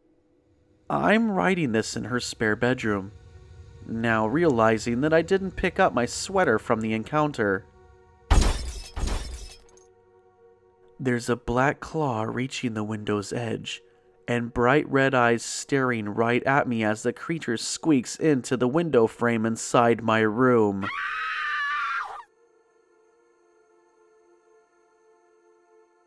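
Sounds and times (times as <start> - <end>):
low background music drone: 0.0 - 21.0, 22.3 - 26.0
glass shattering: 8.3 - 9.8
shrill high-pitched scream: 20.8 - 22.3.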